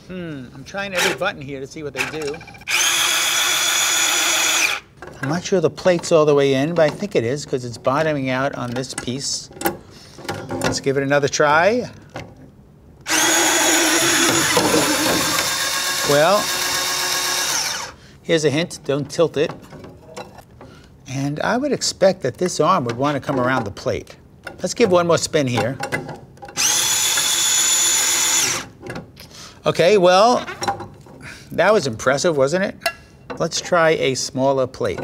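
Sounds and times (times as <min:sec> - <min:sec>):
electric plate washer motor whining: 0:13.1 - 0:18.0.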